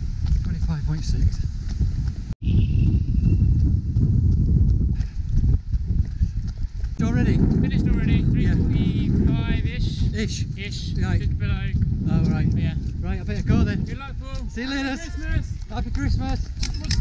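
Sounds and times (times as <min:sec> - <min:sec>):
wind buffeting microphone: 0:00.0 - 0:17.0.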